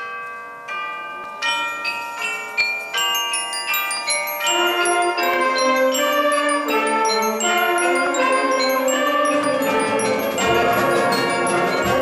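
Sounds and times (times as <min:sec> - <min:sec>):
glockenspiel notes ringing: 0:00.0 - 0:12.0
concert band low notes: 0:04.6 - 0:12.0.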